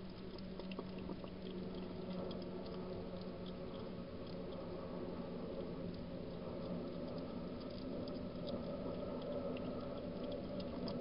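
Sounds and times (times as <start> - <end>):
low hum: 0.0 - 11.0
hedgehog chewing crunches: 0.1 - 4.8, 6.0 - 11.0.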